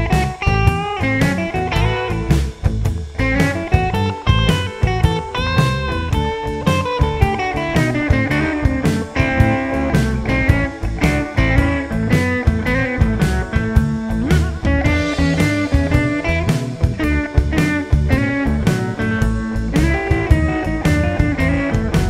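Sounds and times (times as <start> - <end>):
backing track with bass and drums: 0.0 - 22.0
electric guitar blues lead: 0.0 - 22.0.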